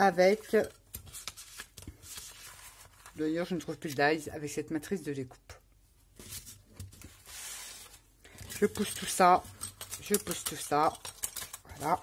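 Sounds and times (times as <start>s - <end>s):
plastic sleeves and papers rustling: 0.0s - 4.3s, 6.0s - 12.0s.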